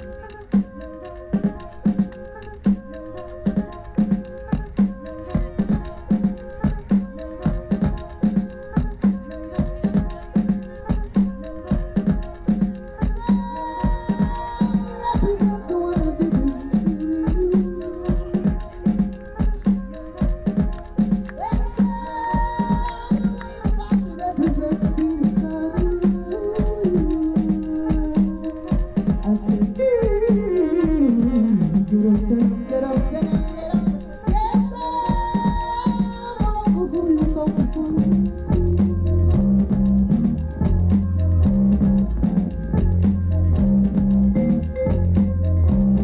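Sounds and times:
live band music: 0.0 - 46.0.

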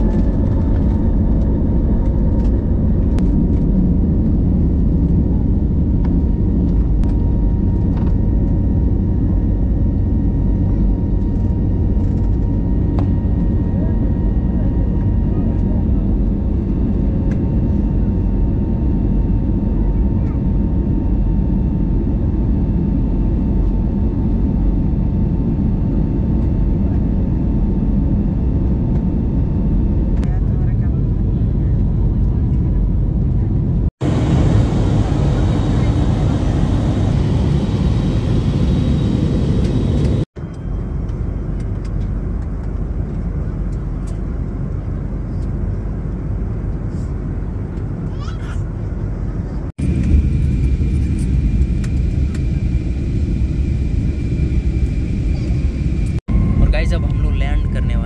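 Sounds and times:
jet cabin engine and airflow noise: 0.0 - 58.0.

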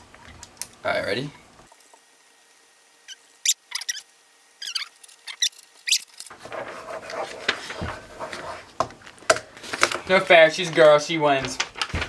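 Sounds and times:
pens scratching on paper: 4.6 - 8.7.

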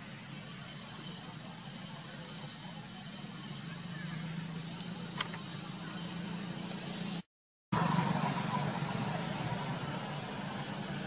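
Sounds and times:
outdoor background hiss: 0.0 - 7.2
sharp click: 4.8 - 5.4.

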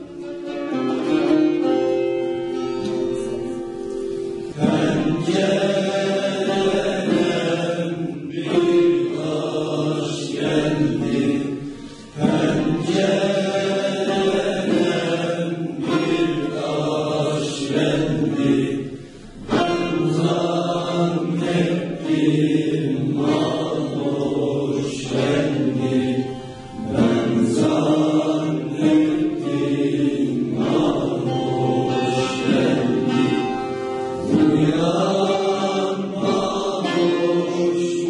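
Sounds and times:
long-necked lute playing: 0.0 - 38.0
youth choir singing folk song: 2.8 - 38.0
singers breathing: 11.5 - 12.2, 18.8 - 19.5, 26.4 - 26.8.

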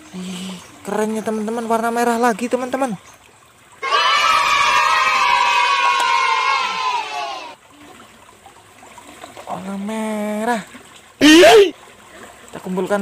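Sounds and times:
children cheering: 3.8 - 7.6.

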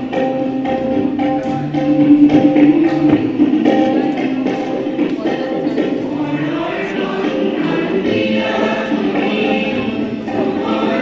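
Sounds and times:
women's choir singing: 2.7 - 11.0.

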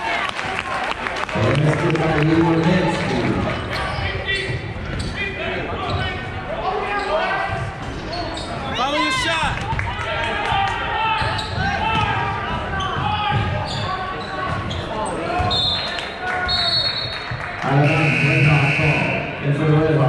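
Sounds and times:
crowd voices and shouts: 0.0 - 20.0
sneaker squeaks: 3.7 - 6.2, 6.9 - 9.0, 11.1 - 17.2.

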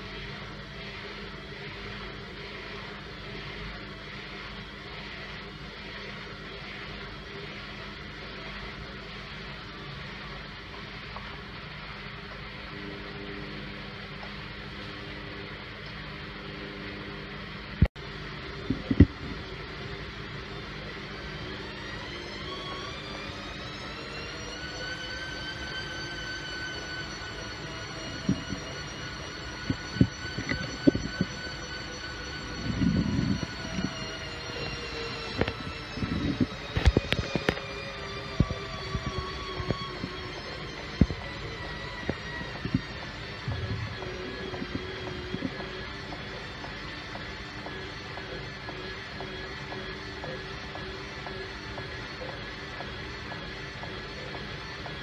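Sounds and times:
washing machine motor whine: 0.0 - 55.0.

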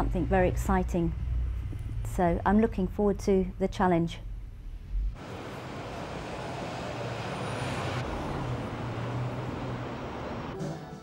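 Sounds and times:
low engine hum: 0.0 - 10.6
road traffic rumble: 0.0 - 10.6.

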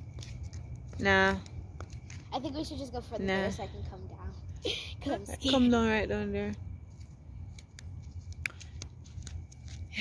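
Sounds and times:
footsteps on asphalt: 0.0 - 4.6, 5.5 - 10.0.

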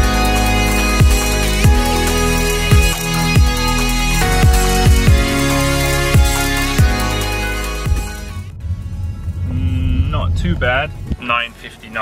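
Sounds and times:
car engine rumble: 0.0 - 12.0.

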